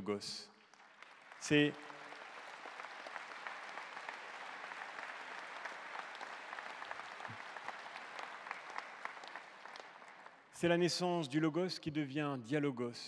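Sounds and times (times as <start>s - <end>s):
audience applauding: 0.6s - 10.6s.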